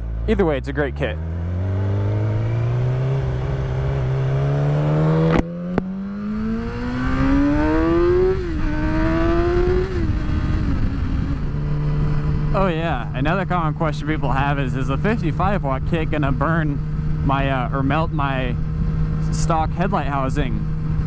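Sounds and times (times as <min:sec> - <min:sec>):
motorcycle engine accelerating: 0:00.0 - 0:21.0
wind rush: 0:06.3 - 0:14.6.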